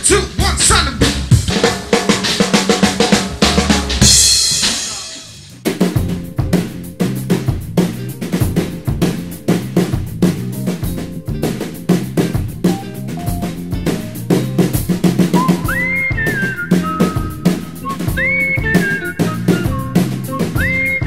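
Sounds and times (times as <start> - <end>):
drum kit playing: 0.0 - 21.0
cymbal crash: 3.4 - 5.6.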